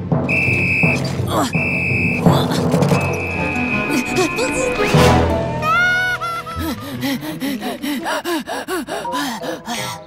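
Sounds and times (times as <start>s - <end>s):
short falling whistle: 0.3s - 2.3s, 3.0s - 4.8s
cartoon cat panting: 6.4s - 10.0s.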